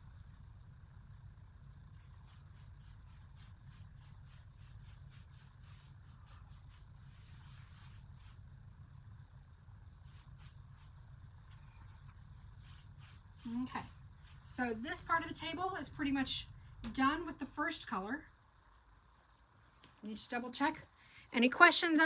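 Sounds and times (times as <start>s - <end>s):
low room hum: 0.0s - 22.0s
paintbrush swishing on wood: 1.5s - 8.5s, 12.3s - 14.6s.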